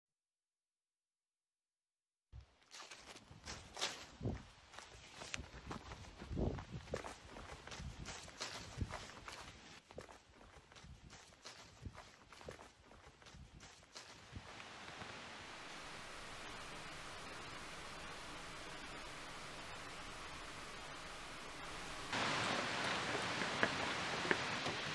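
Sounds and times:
footsteps crunching dry leaves: 2.6s - 15.3s
steady hiss: 14.0s - 24.9s.

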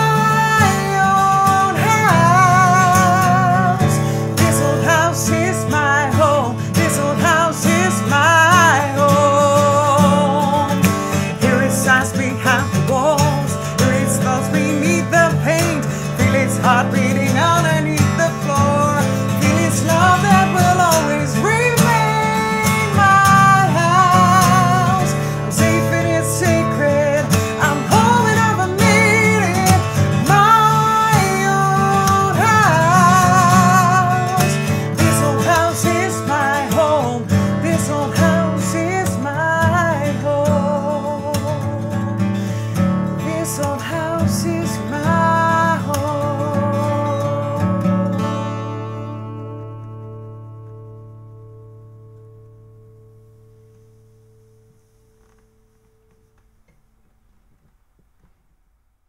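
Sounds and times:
woman singing: 0.0s - 42.3s, 43.2s - 48.2s
acoustic guitar: 0.0s - 58.8s.

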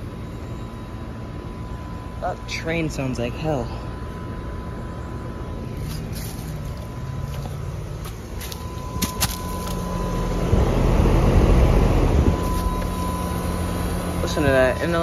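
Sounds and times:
air conditioner low hum: 0.0s - 15.0s
harsh mechanical noise: 0.0s - 15.0s.

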